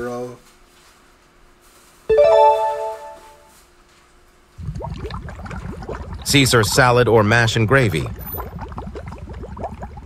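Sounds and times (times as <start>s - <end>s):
rising musical chime: 2.1s - 3.5s.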